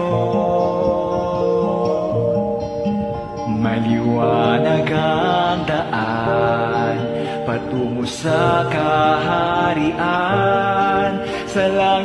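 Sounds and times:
person singing a song: 0.0s - 12.0s
sustained instrumental backing: 0.0s - 12.0s.

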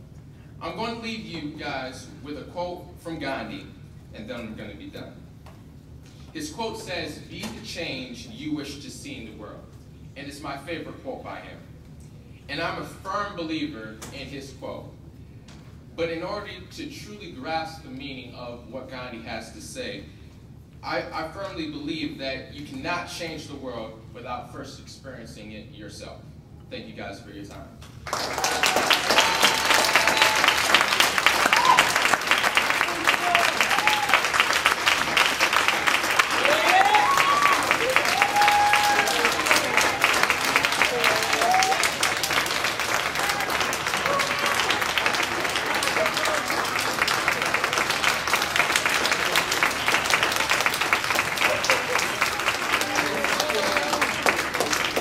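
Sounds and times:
audience clapping: 28.0s - 55.0s.

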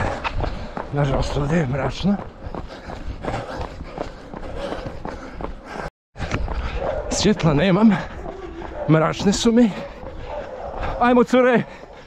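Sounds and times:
running footsteps on pavement: 0.0s - 12.0s.

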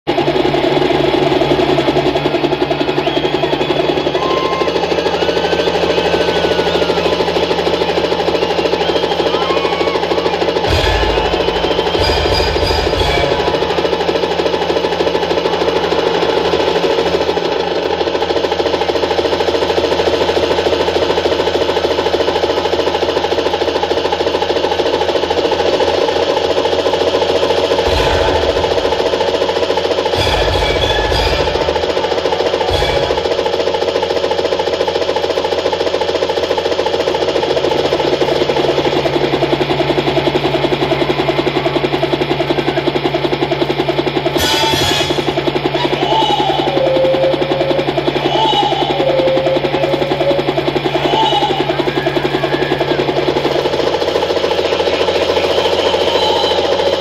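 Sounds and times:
helicopter engine and rotor drone: 0.0s - 57.0s
background music: 10.6s - 16.8s, 27.8s - 34.1s.

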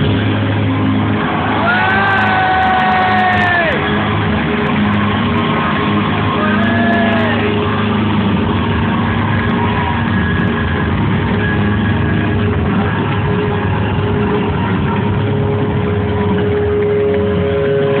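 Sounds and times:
crowd noise: 0.0s - 18.0s
distorted electric guitar: 0.0s - 18.0s.

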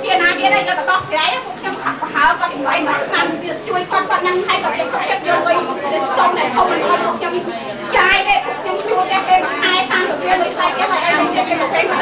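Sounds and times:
crowd chatter: 0.0s - 12.0s
woman talking into microphone: 0.0s - 12.0s.

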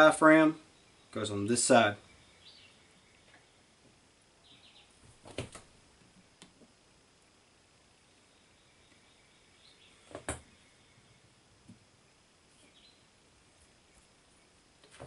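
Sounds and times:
low hiss: 0.0s - 15.0s.

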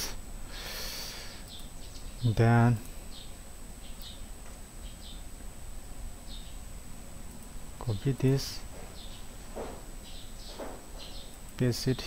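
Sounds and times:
person breathing close to microphone: 0.0s - 1.5s.

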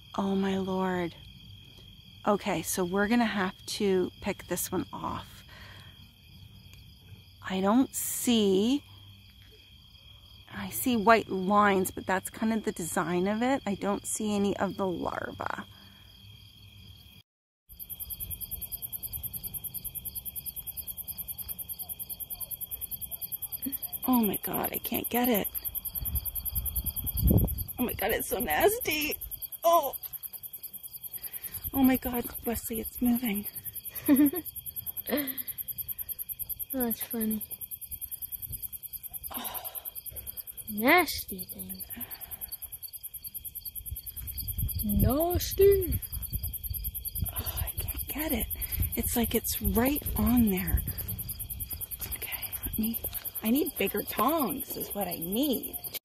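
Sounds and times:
crickets chirping: 0.0s - 56.0s.

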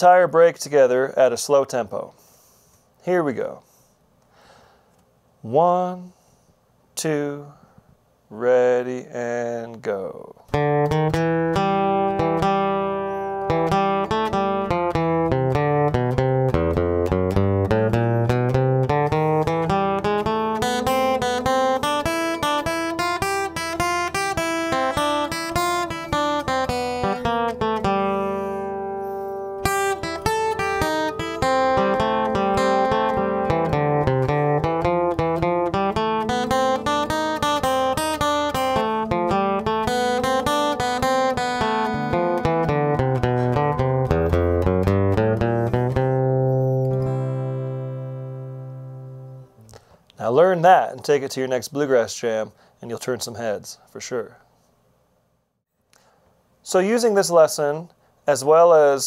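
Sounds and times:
acoustic guitar single-note runs: 10.5s - 49.6s.

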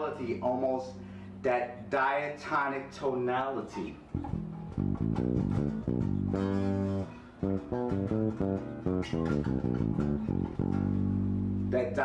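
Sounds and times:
electric bass guitar plucked: 0.0s - 1.9s, 3.8s - 12.0s.

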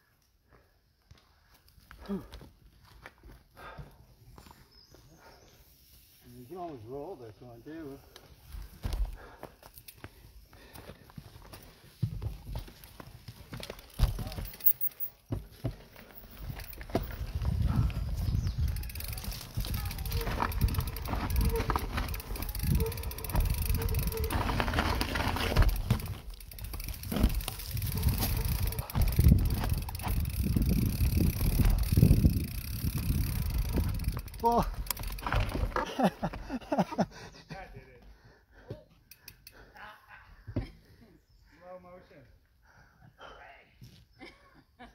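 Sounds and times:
bike tyres rumbling over dirt: 10.6s - 36.6s
bike knocking and rattling: 10.8s - 36.8s.

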